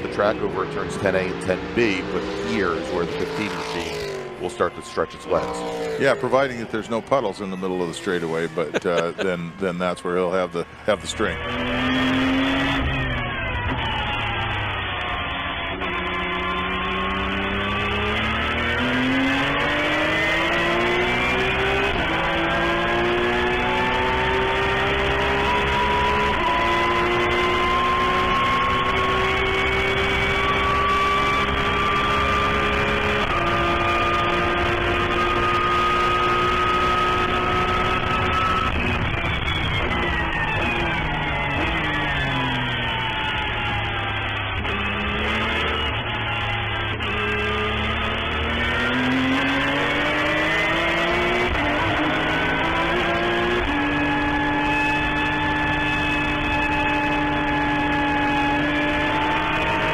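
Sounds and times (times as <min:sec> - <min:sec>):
race car engine at full throttle: 0:00.0 - 0:59.9.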